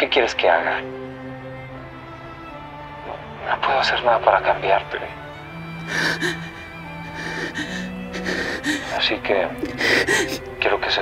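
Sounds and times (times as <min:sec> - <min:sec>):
soft dramatic score: 0:00.0 - 0:11.0
sharp intake of breath: 0:05.8 - 0:09.0
quiet breathing: 0:05.8 - 0:10.5.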